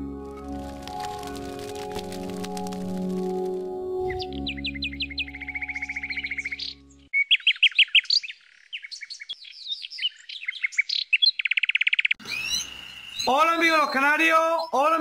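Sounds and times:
low sustained music: 0:00.0 - 0:07.1
canary singing: 0:00.6 - 0:14.9.

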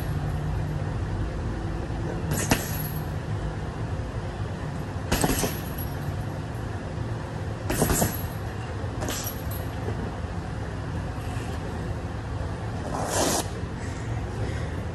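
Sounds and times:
punches on heavy bag: 0:02.3 - 0:02.9, 0:05.1 - 0:05.8, 0:07.7 - 0:08.3.

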